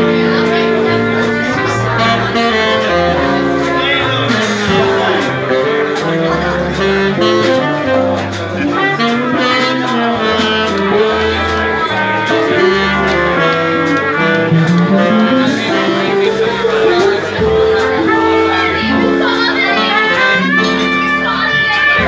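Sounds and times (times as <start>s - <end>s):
bass line: 0.0s - 22.0s
drums with cymbal strokes: 0.0s - 22.0s
saxophone: 0.0s - 22.0s
trumpet: 0.0s - 22.0s.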